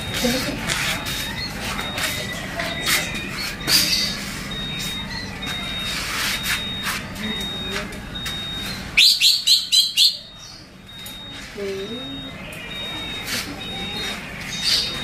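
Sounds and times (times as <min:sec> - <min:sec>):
rapid sharp bird chirps: 0:09.0 - 0:10.6.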